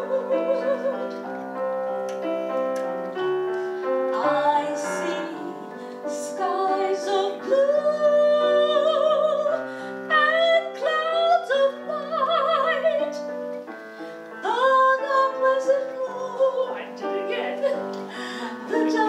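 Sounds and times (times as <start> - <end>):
piano accompaniment: 0.0 - 19.0
woman singing with vibrato: 4.1 - 13.3, 14.4 - 19.0.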